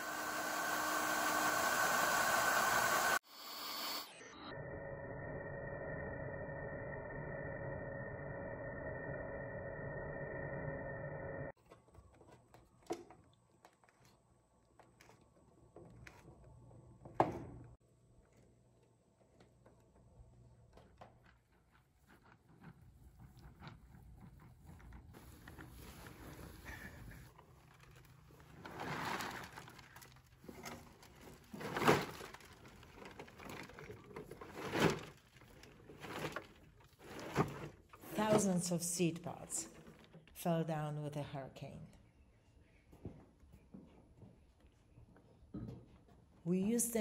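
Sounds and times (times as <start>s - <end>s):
cordless drill boring metal: 0.0s - 4.2s
wheelbarrow being tipped: 28.6s - 29.8s.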